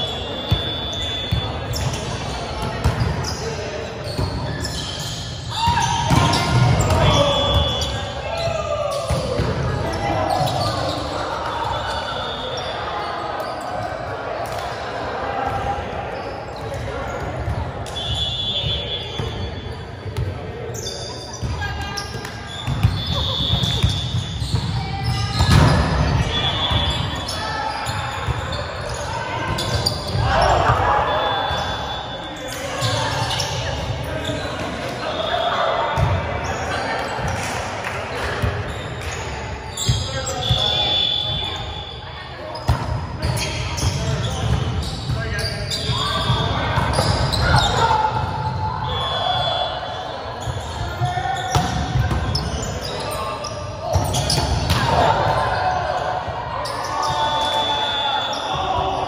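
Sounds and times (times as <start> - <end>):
players calling out: 0.0 - 59.0
sneakers squeaking on floor: 0.0 - 59.0.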